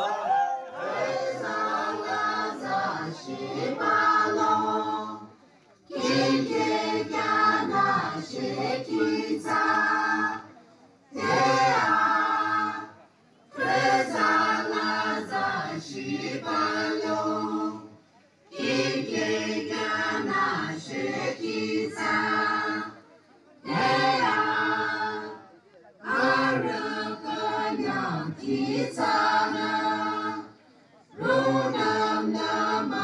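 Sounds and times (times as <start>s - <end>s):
group singing unaccompanied chant: 0.0s - 33.0s.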